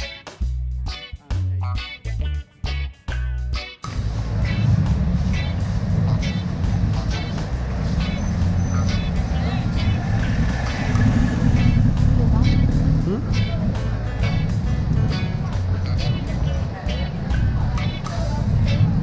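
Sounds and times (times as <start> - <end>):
music with steady beat: 0.0 - 19.0
engine rising in pitch: 3.9 - 19.0
low traffic rumble: 3.9 - 19.0
vehicles driving past: 3.9 - 19.0
voices of passers-by: 3.9 - 19.0.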